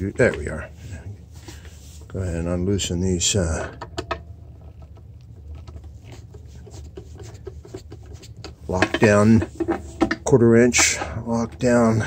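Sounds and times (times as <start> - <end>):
low steady hum: 0.0 - 12.0
nut driver scraping and ticking: 3.7 - 12.0.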